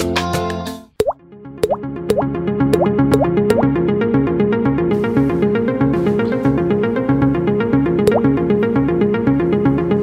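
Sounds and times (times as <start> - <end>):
background music: 0.0 - 10.0
electronic track: 8.1 - 8.4.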